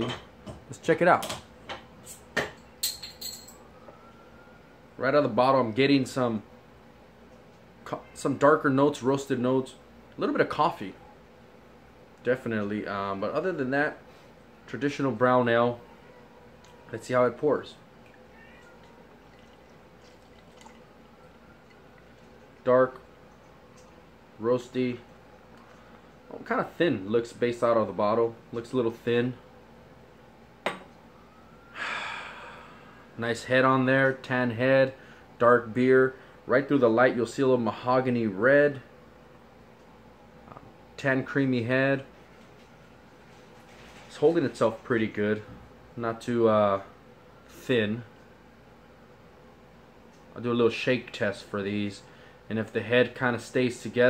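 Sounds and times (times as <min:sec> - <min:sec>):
glass bottle clink: 0:02.4 - 0:03.6.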